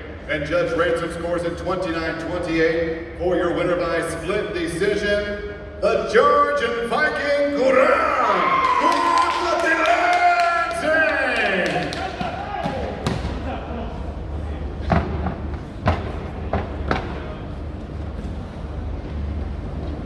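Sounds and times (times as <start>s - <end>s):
low hum of large hall: 0.0s - 20.0s
sharp knocks and thumps: 14.8s - 17.3s.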